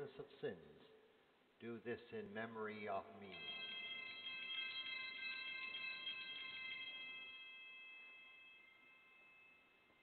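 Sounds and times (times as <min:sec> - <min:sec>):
altar bells ringing: 0:03.2 - 0:10.0.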